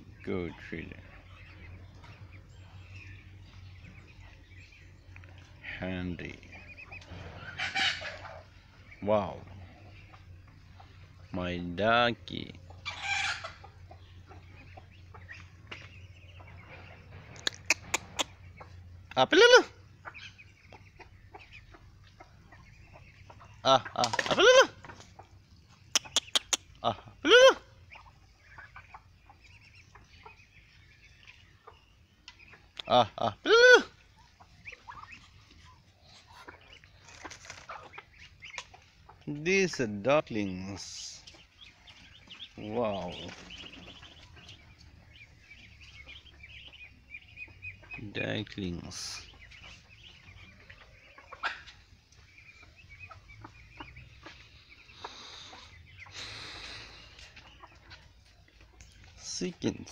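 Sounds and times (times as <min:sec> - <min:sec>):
chickens clucking: 0:00.0 - 0:59.9
ducklings peeping: 0:00.0 - 0:59.9.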